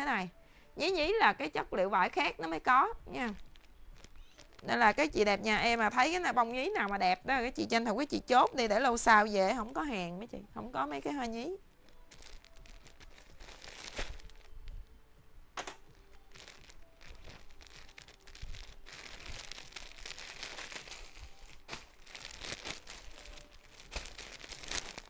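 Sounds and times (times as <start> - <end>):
plastic bags rustling: 2.1 - 7.8, 11.0 - 14.9, 15.8 - 25.0.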